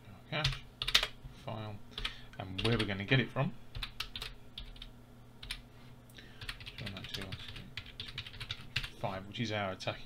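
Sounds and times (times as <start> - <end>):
typing on computer keyboard: 0.4 - 1.1, 2.0 - 2.9, 3.8 - 5.6, 6.4 - 8.9.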